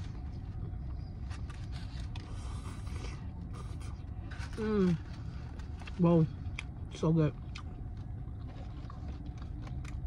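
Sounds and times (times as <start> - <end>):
chewing a sandwich: 0.0 - 10.0
low rumble inside a car: 0.0 - 10.0.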